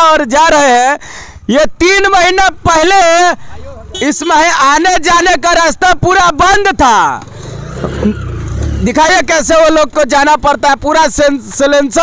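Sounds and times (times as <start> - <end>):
motorcycle engine running: 7.2 - 9.7.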